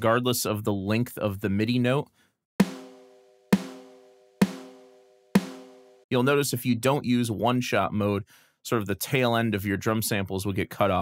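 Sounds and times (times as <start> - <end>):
snare drum hits: 2.6 - 6.0.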